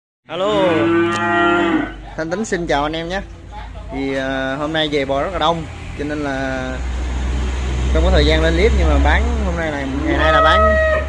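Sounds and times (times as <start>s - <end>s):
cow mooing: 0.4s - 2.0s, 10.0s - 11.0s.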